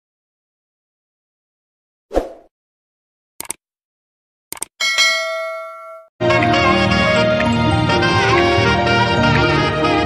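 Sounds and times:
notification bell ding: 4.8 - 6.1
music: 6.2 - 10.0.

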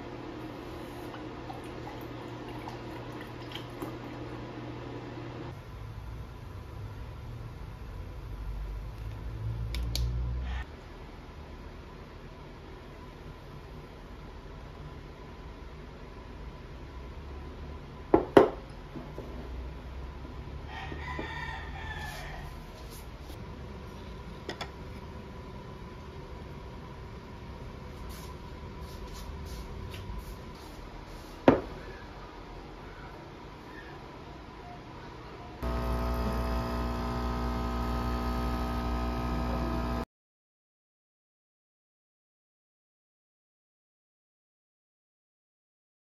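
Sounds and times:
coffee machine pump humming: 0.0 - 5.6, 35.6 - 40.1
tableware knocking on wooden table: 18.2 - 18.6, 31.5 - 31.7
rooster crowing: 20.6 - 22.8.

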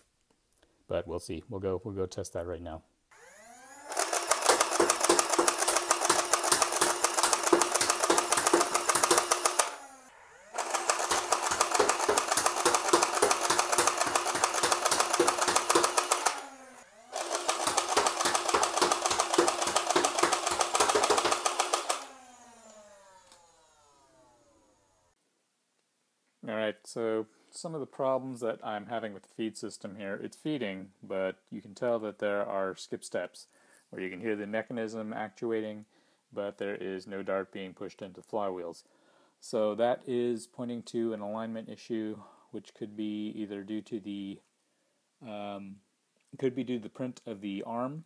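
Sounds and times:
flywheel motors whining: 3.1 - 25.2
toy blaster pusher clatter: 3.2 - 24.8.

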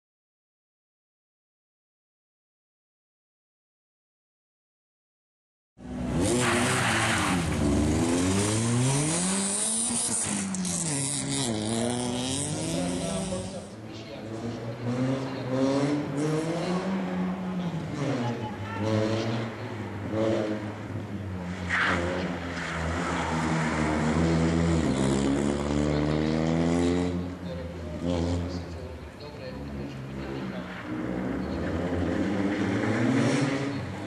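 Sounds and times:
rally car engine revving: 5.9 - 34.0.

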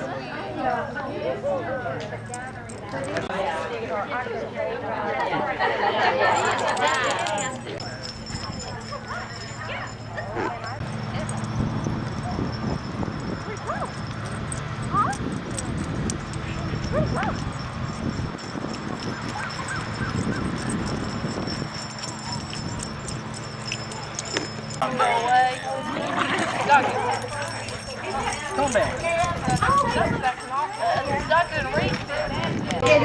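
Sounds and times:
people talking: 0.0 - 14.2, 14.9 - 33.0
small dogs barking and yipping: 6.2 - 32.4.

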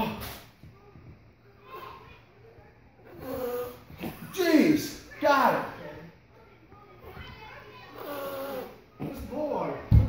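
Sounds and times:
child murmuring: 3.0 - 4.4, 7.0 - 9.2.

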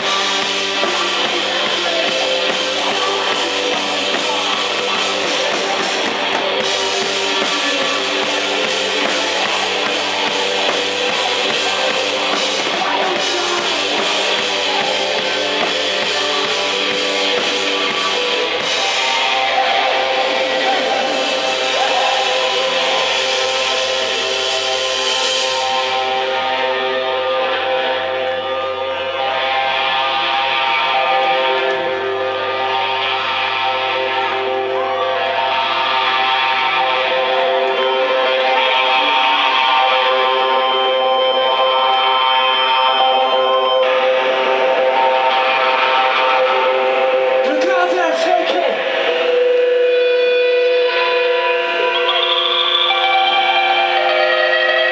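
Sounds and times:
electric guitars and bass drone: 0.0 - 54.9.

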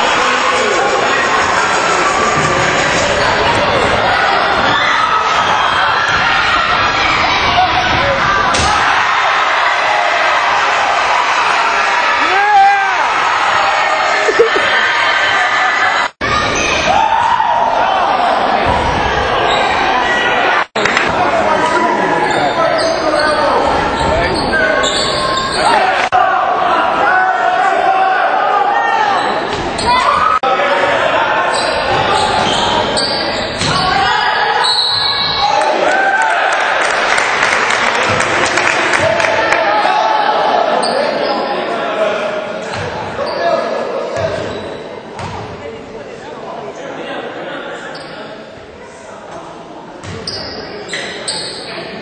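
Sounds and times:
voices of players and crowd: 0.0 - 52.0
basketball bouncing on court: 45.2 - 45.6.

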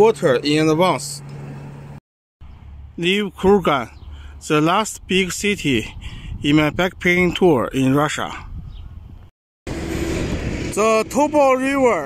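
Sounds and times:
man talking: 0.0 - 1.2, 3.0 - 8.5, 10.7 - 12.0
wind and traffic rushing: 0.0 - 12.0.

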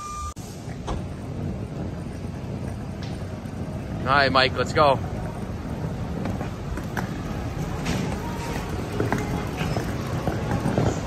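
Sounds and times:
suitcase wheels rumbling on concrete: 0.5 - 11.0.

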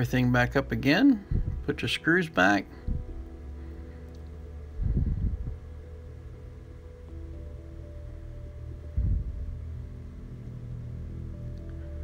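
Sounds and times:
soft sustained background music: 0.0 - 12.0.

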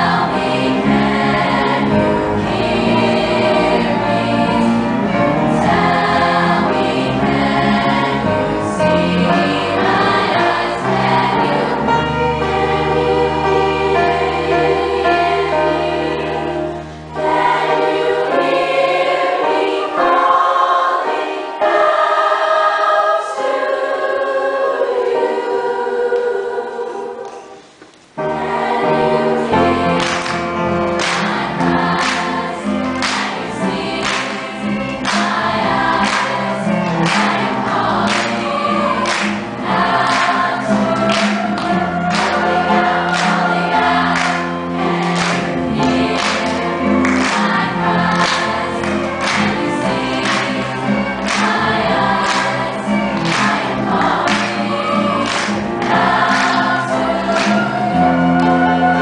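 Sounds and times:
girls' chorus singing: 0.0 - 59.0
singers clapping in time: 29.6 - 59.0.

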